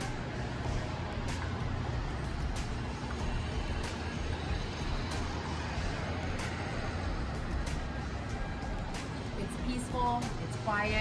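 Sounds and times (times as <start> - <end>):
background music with light beat: 0.0 - 11.0
city street traffic rumble: 0.0 - 11.0.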